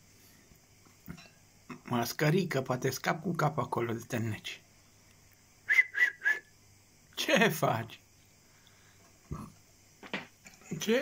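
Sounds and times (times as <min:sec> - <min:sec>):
short whistled notes: 0:05.6 - 0:06.5.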